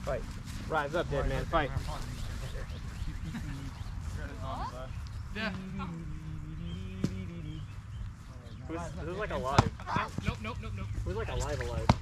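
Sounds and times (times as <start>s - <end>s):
faint distant voices: 0.0s - 12.0s
steady low rumble: 0.0s - 12.0s.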